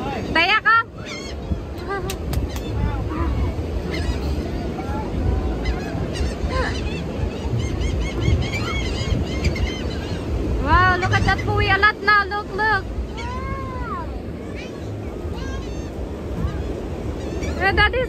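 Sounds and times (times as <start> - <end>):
gulls calling: 0.0 - 18.0
low wind: 0.0 - 18.0
surf: 0.0 - 18.0.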